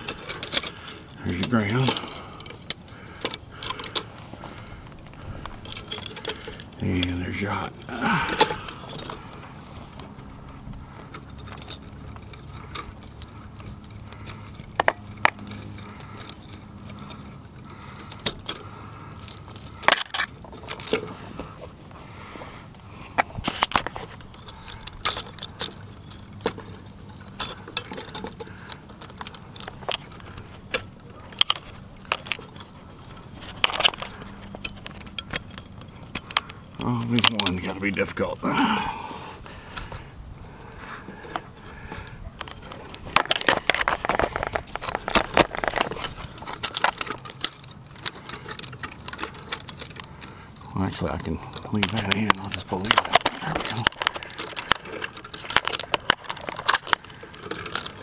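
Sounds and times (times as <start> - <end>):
light metallic clinks: 0.0 - 21.2, 23.8 - 38.2
hands clicking wiring: 0.0 - 21.8, 22.6 - 58.0.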